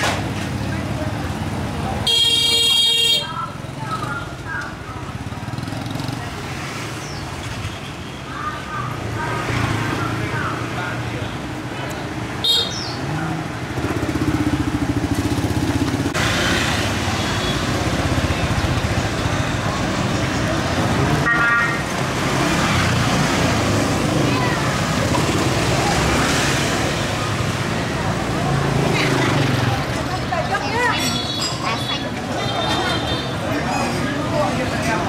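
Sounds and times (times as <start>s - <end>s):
scooters and motorbikes passing: 3.4s - 35.0s.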